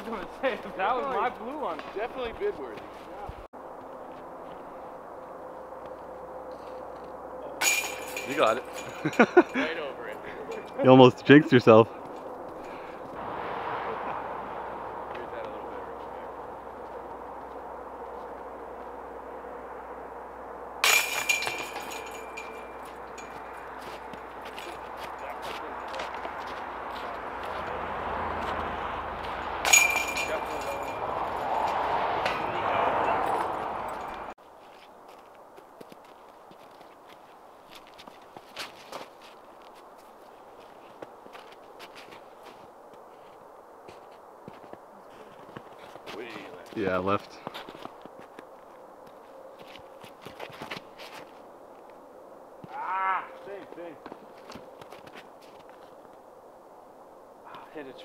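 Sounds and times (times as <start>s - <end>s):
discs hitting basket chains: 7.6s - 9.7s, 20.8s - 25.3s, 29.6s - 32.5s.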